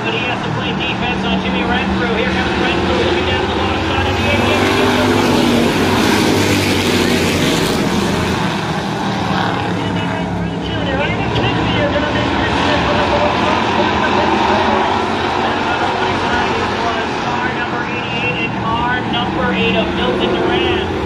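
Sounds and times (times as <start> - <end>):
voice: 0.0 - 6.0, 9.6 - 21.0
race car engines passing: 0.0 - 21.0.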